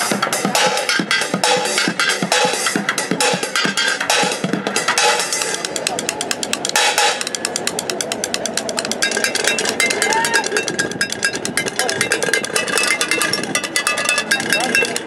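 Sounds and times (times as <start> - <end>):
drumsticks rolling on pots and pans: 5.4 - 15.0
ringing metal tones: 7.2 - 15.0.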